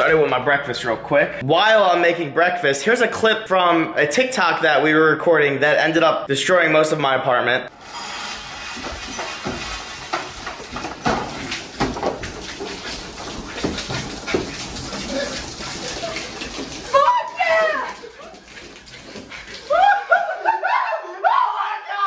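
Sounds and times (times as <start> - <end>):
milk splashing: 8.3 - 20.5
person shouting: 16.9 - 18.1, 20.6 - 22.0.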